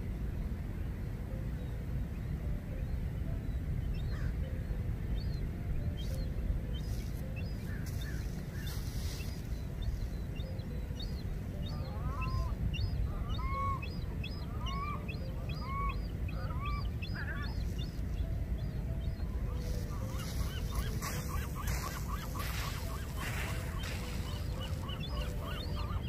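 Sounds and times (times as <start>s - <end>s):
steady low rumble: 0.0s - 26.0s
birds calling: 1.6s - 26.0s.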